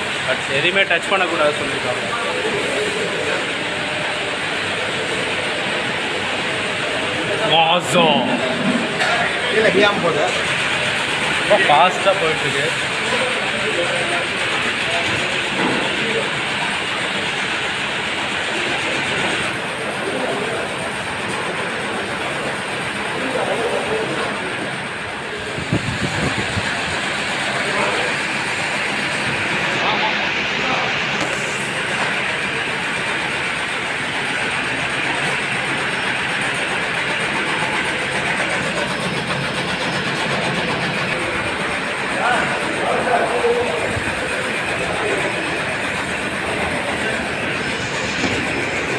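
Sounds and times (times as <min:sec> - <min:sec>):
bottling machinery running: 0:00.0 - 0:48.9.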